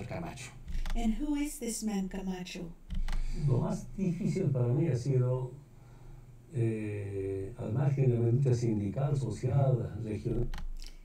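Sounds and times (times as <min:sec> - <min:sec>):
man speaking: 0:00.0 - 0:00.7, 0:03.3 - 0:05.6, 0:06.5 - 0:10.6.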